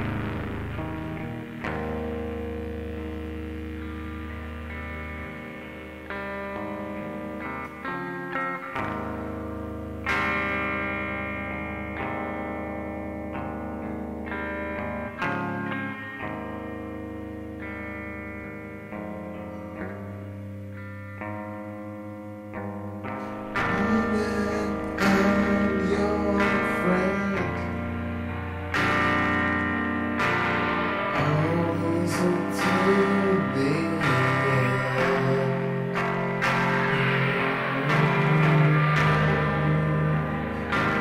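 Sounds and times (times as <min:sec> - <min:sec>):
electric guitar chords ringing: 0:00.0 - 0:41.0.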